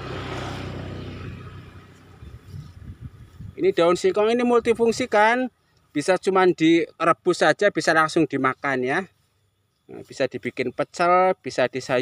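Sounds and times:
vehicle passing on road: 0.0 - 5.1.

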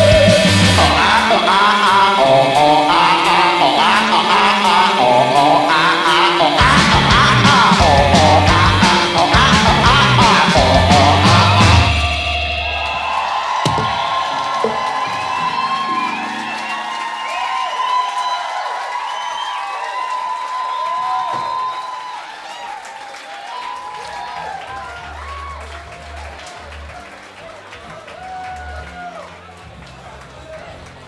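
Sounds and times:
audience cheering and whistling: 0.0 - 29.6.

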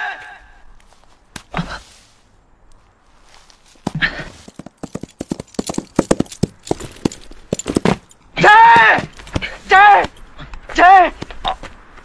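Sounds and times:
horse hoofbeats: 3.8 - 9.5.

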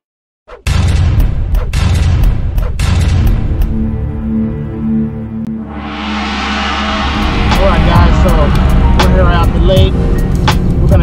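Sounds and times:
intro music: 3.7 - 11.0.

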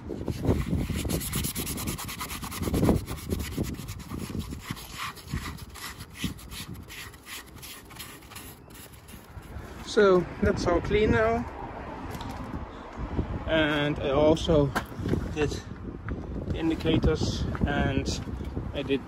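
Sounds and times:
cloth rubbing on plastic: 0.2 - 9.6.

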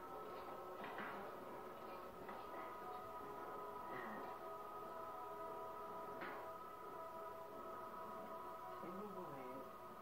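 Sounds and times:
television tones: 0.0 - 10.0.

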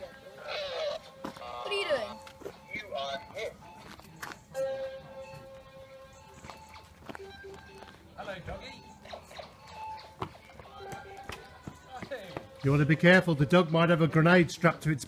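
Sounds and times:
distant voices: 0.0 - 14.3.

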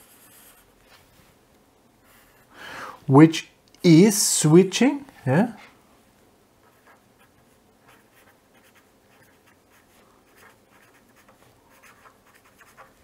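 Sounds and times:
felt-tip pen writing on paper: 6.6 - 13.0.

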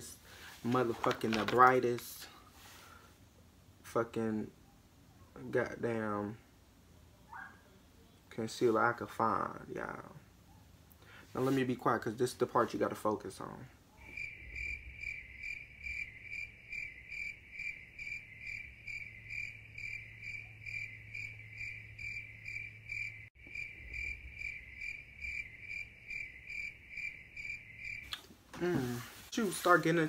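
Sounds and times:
cricket chirping: 14.0 - 28.2.

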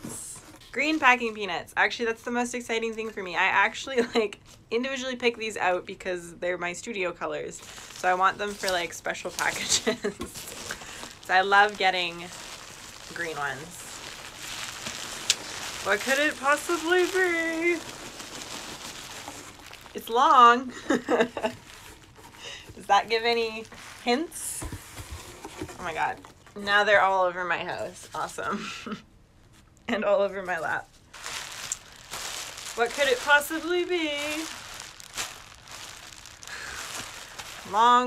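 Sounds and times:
bubble wrap rustling: 6.9 - 26.5, 29.4 - 38.0
packing peanuts shifting: 7.5 - 26.1, 30.6 - 38.0.

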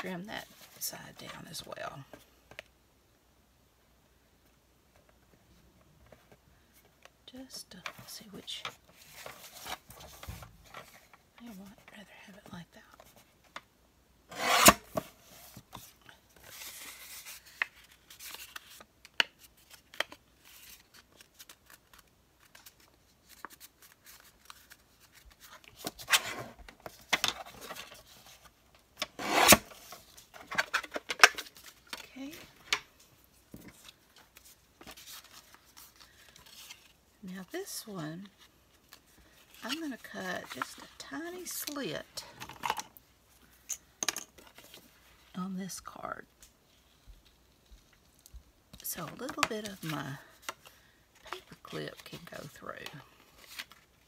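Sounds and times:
paper rustling: 29.4 - 37.0.

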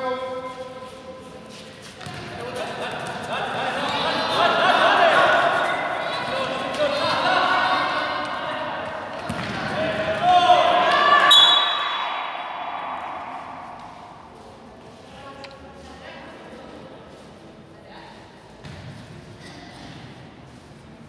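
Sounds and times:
ball bouncing on court floor: 2.0 - 2.4, 9.1 - 9.8, 18.6 - 19.2
people shouting in echoing gym: 3.5 - 14.7.

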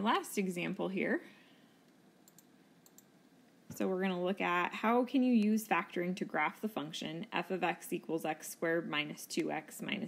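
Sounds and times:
woman speaking: 0.0 - 1.3, 3.7 - 10.0.

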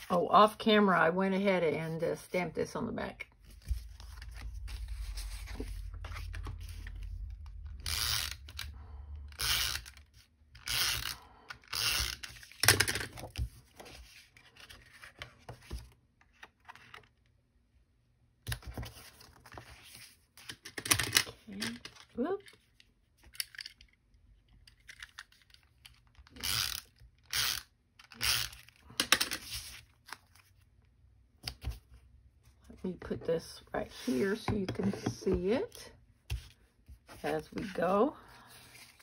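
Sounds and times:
paper card rustling and scraping: 3.3 - 8.7, 12.0 - 17.2, 18.5 - 23.7, 28.5 - 30.7, 31.4 - 39.0
low steady rumble: 3.8 - 9.4.

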